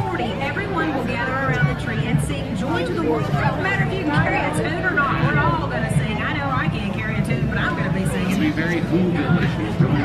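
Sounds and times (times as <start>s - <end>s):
speech over public-address system: 0.0s - 10.0s.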